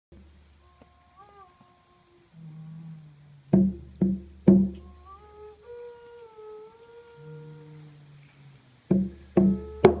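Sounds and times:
hand drum strike: 0:03.6 - 0:04.9, 0:08.9 - 0:10.0.

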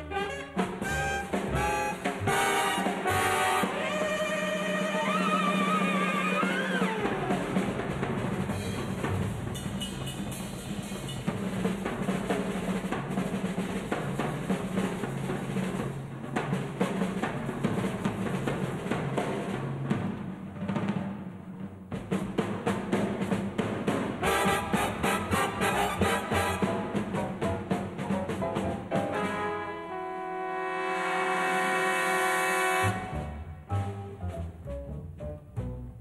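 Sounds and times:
big band horns: 0:00.0 - 0:15.9, 0:23.0 - 0:34.5
jazz drum solo: 0:00.0 - 0:30.1, 0:30.8 - 0:36.0.

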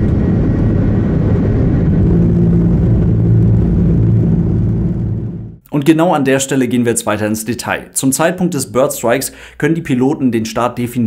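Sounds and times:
jet engine rumble: 0:00.0 - 0:05.6.

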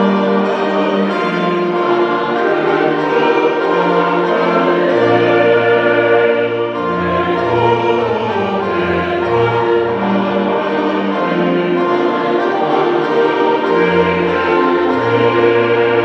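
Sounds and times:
choir singing sustained chords: 0:00.0 - 0:16.0.

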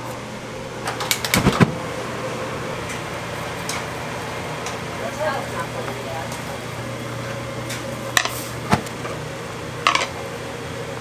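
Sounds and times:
constant low hum: 0:00.0 - 0:11.0
gas burners roaring: 0:00.0 - 0:11.0
stew boiling hard: 0:01.2 - 0:11.0.

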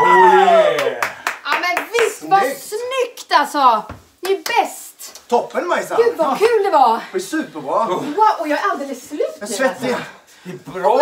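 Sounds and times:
excited voice exclamations: 0:00.0 - 0:01.1
hand claps: 0:00.8 - 0:02.3, 0:04.2 - 0:05.3.

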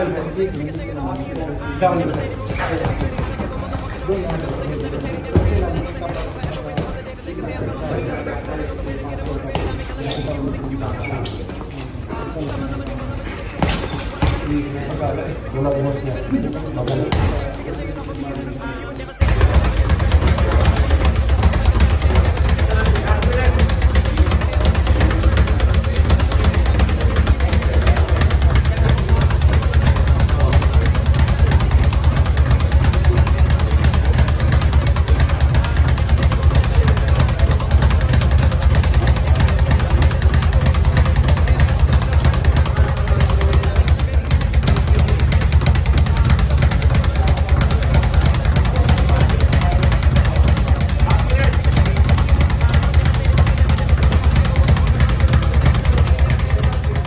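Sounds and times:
speed bag drumming rattle: 0:02.2 - 0:04.7, 0:19.2 - 0:57.0.

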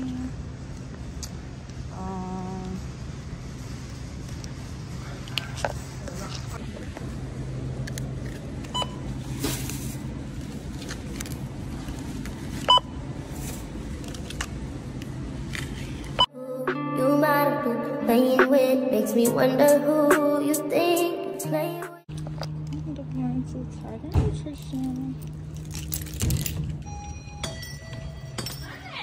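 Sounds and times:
steady low hum: 0:00.0 - 0:16.3, 0:17.9 - 0:29.0.

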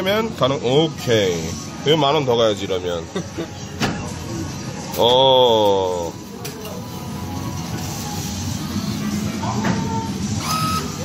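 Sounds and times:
bill acceptor motor whirring: 0:10.1 - 0:11.0.

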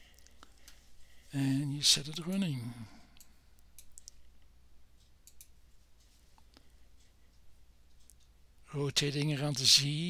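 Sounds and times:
computer mouse clicks: 0:03.2 - 0:04.2, 0:05.2 - 0:05.6.

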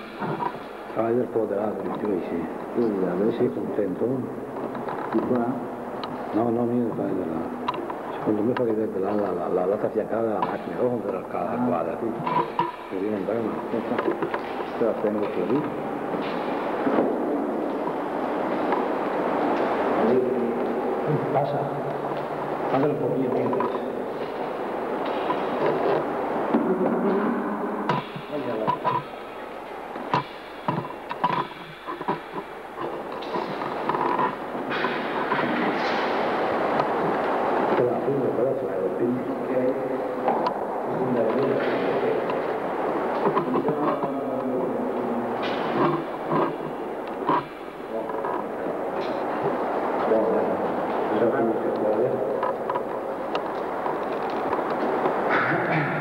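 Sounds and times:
indistinct voices talking: 0:00.0 - 0:56.0
recording noise: 0:00.0 - 0:56.0
sharp clicks and knocks: 0:13.5 - 0:18.0, 0:22.0 - 0:29.2, 0:30.0 - 0:38.0, 0:41.2 - 0:50.1, 0:51.7 - 0:56.0.

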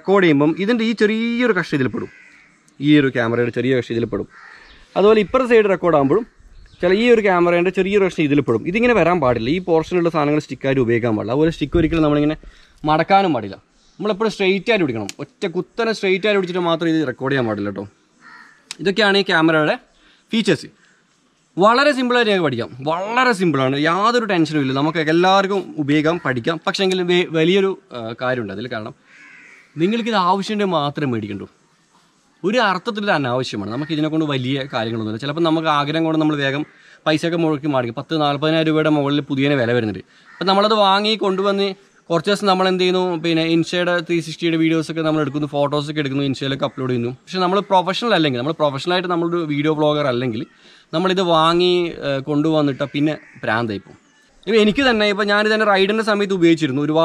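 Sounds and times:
man speaking: 0:00.0 - 0:02.1, 0:02.8 - 0:17.9, 0:18.7 - 0:20.8, 0:21.6 - 0:29.0, 0:29.8 - 0:31.6, 0:32.4 - 0:57.0
man talking: 0:00.0 - 0:02.2, 0:02.8 - 0:17.9, 0:18.7 - 0:20.8, 0:21.6 - 0:29.0, 0:29.8 - 0:31.6, 0:32.4 - 0:57.0
harsh bird caw: 0:00.5 - 0:07.5, 0:17.3 - 0:21.2, 0:24.9 - 0:27.0, 0:28.8 - 0:30.8, 0:33.6 - 0:37.5, 0:39.6 - 0:43.0, 0:46.2 - 0:56.0.

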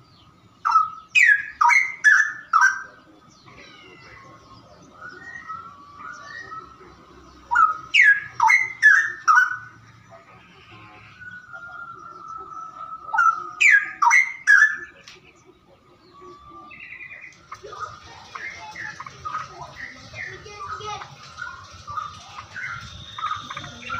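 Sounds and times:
songbird singing: 0:00.0 - 0:23.9.

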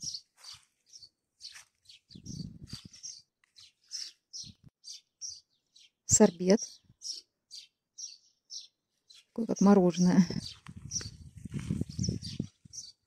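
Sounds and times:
songbirds chirping: 0:00.0 - 0:13.0.

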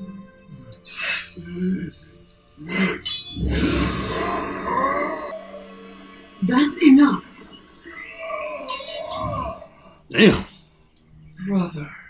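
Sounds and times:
rising tone: 0:03.3 - 0:10.4
low rumbling magical power effect: 0:03.4 - 0:09.5.

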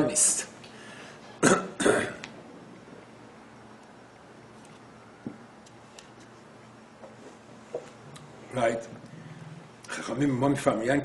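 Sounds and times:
man coughing: 0:01.4 - 0:02.2.

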